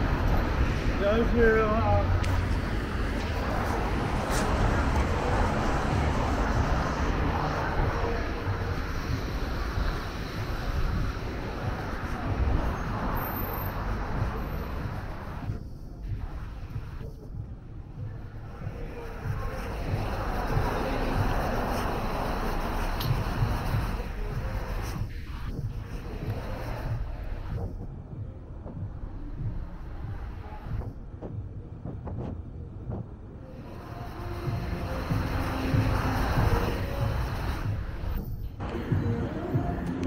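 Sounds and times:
passing cars rumbling: 0:00.0 - 0:40.0.

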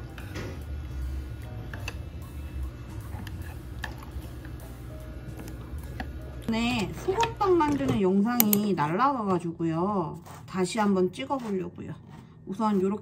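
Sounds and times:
low steady hum: 0:00.0 - 0:13.0
metal chopsticks clicking on dishes: 0:08.4 - 0:08.7.

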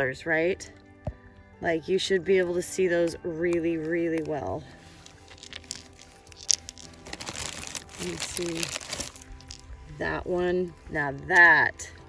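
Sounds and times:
faint background music: 0:00.0 - 0:12.0
crinkly rustling and crunching: 0:04.8 - 0:09.7.

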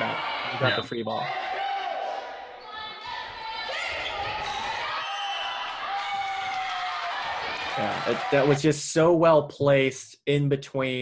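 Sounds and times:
volleyball being played: 0:00.0 - 0:08.6
voices in a hall: 0:00.0 - 0:08.8.

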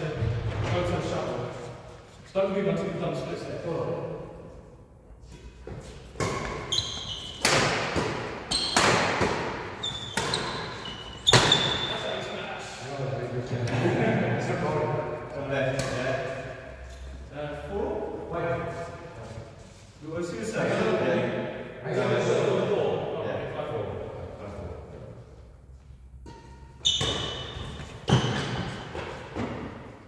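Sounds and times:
shoes squeaking on wooden floor: 0:05.8 - 0:07.4, 0:09.8 - 0:12.0, 0:26.8 - 0:29.5
racket striking shuttlecock: 0:07.3 - 0:10.7
players' voices: 0:11.5 - 0:25.2.

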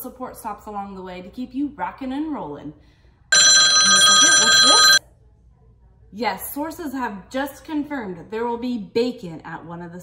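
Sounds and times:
telephone ringing: 0:03.3 - 0:05.0.

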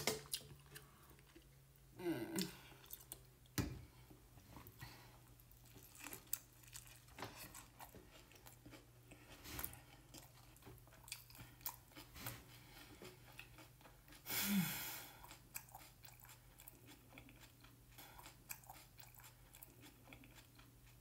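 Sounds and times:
low steady hum: 0:00.0 - 0:21.0
chewing with mouth clicks: 0:02.4 - 0:03.5, 0:05.5 - 0:14.2, 0:15.2 - 0:21.0.

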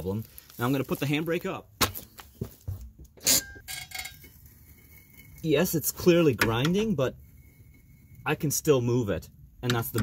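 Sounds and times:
faint squealing grind: 0:03.2 - 0:09.0.

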